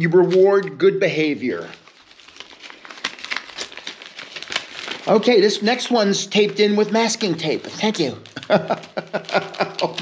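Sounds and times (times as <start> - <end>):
paper envelope crinkling: 0.0 - 10.0.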